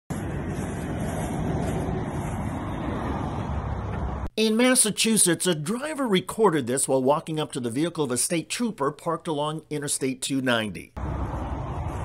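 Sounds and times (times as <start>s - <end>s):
highway traffic: 0.1s - 4.4s, 11.0s - 12.0s.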